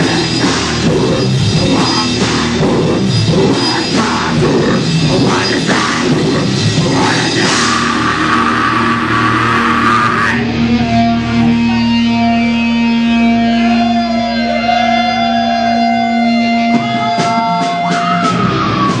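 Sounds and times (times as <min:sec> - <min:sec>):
loud live rock band: 0:00.0 - 0:19.0
electric guitar held notes: 0:07.5 - 0:19.0.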